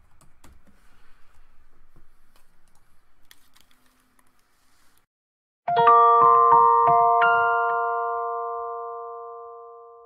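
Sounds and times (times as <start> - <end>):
bell-like mallet percussion chord: 5.7 - 10.0.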